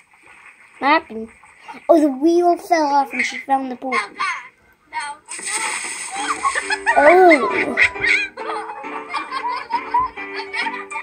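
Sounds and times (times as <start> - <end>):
water splashing in pool: 0.0 - 3.6, 5.2 - 8.2
children shouting: 6.2 - 8.2.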